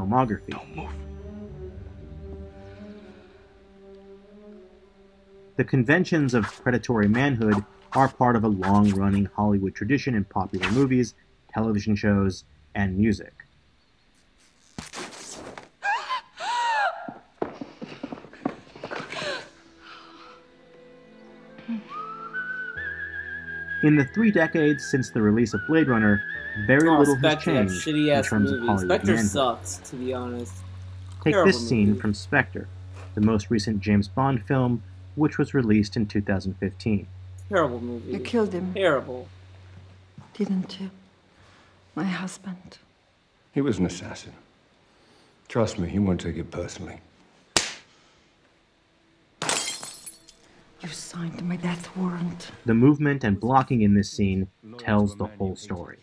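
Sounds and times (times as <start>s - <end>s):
low sustained bass note: 0.0s - 7.5s, 23.3s - 41.6s
high whistle-like lead tone: 21.7s - 30.8s
glass shattering crash: 49.4s - 50.5s.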